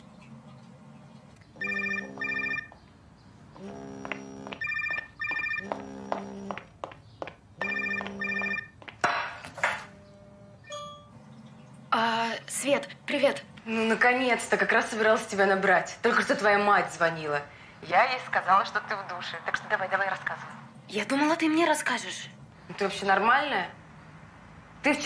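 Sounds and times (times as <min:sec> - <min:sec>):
mobile phone ringtone melody: 0:01.6 - 0:02.7, 0:04.6 - 0:05.7, 0:07.6 - 0:08.8.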